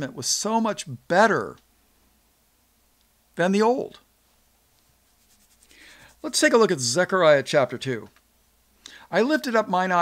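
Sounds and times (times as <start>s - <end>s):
faint low hum: 0.0s - 10.0s
faint soft rustle: 4.2s - 6.5s.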